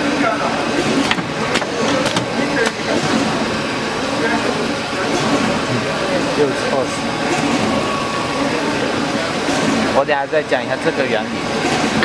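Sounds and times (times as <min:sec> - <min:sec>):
machine running steadily: 0:00.0 - 0:12.0.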